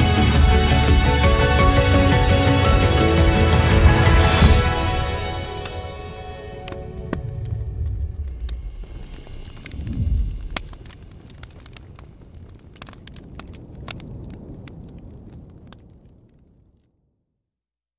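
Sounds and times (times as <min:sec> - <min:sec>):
fire crackling and popping: 0:03.4 - 0:17.2
low rumble of flame: 0:06.4 - 0:17.4.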